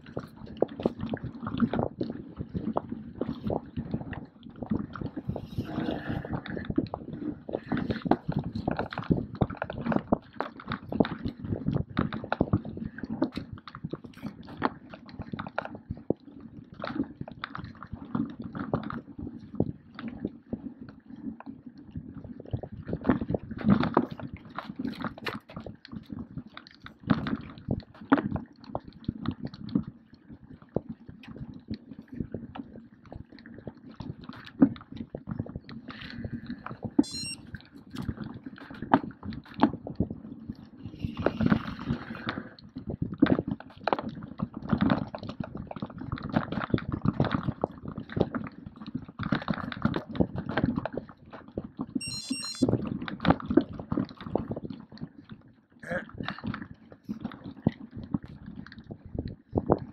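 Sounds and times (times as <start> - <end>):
short high beeps: 37.0 - 37.4, 52.0 - 52.7.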